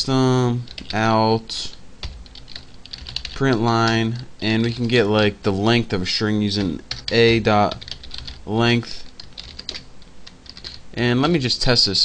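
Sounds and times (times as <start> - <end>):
keyboard typing clicks: 9.2 - 10.8.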